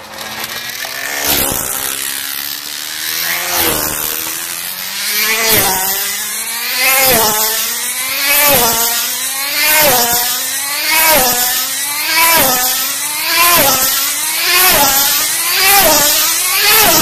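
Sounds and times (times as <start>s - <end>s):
model car engine racing: 0.0s - 17.0s.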